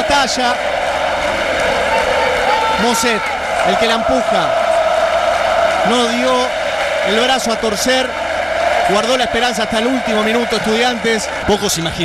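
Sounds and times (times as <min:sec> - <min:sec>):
man's voice: 0:00.0 - 0:00.6, 0:02.1 - 0:04.6, 0:05.8 - 0:08.1, 0:08.9 - 0:12.0
stadium crowd noise: 0:00.0 - 0:12.0.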